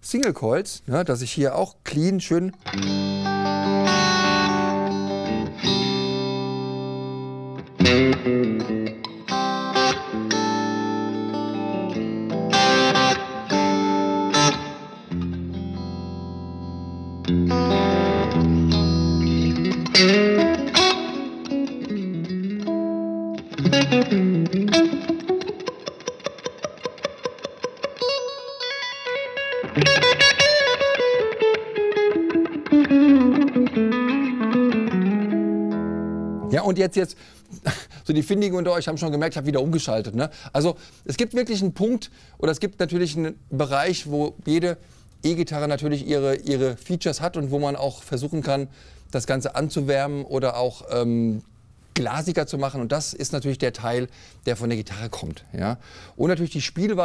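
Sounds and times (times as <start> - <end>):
clean electric guitar: 2.6 - 37.6.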